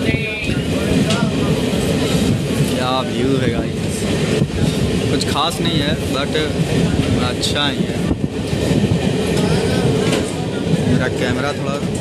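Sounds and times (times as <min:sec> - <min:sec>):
train wheels rumbling: 0:00.0 - 0:12.0.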